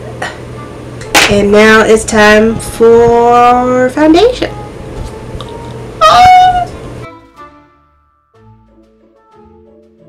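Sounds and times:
high-pitched vocal squeal: 6.0 - 6.8.

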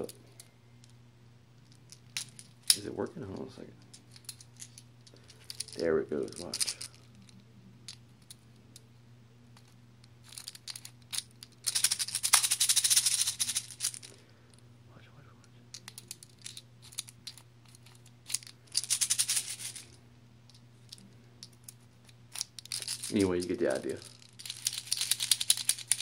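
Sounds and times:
plastic pellets rattling in magazine: 4.1 - 7.1, 10.2 - 14.1, 15.8 - 20.0, 20.9 - 26.0.

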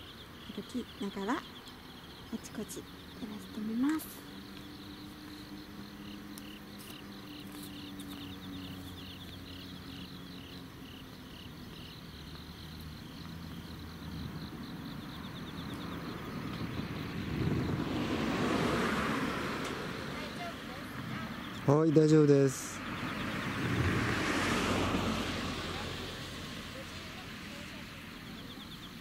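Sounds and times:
insect chirping: 0.0 - 29.0
vehicle passing: 0.0 - 29.0.

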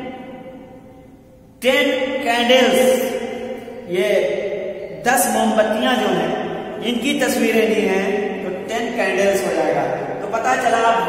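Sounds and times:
man reading aloud: 1.6 - 11.0.

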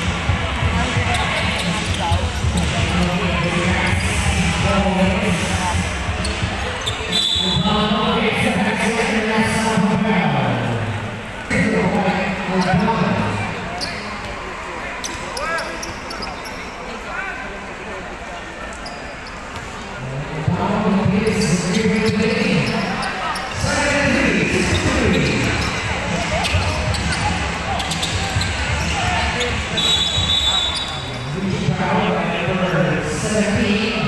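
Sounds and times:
crowd chatter and shouts: 0.0 - 34.0
referee's whistle: 6.8 - 7.8, 29.7 - 31.2.

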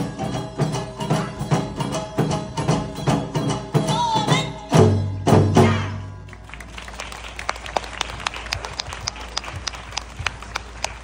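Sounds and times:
audience clapping: 6.3 - 11.0.

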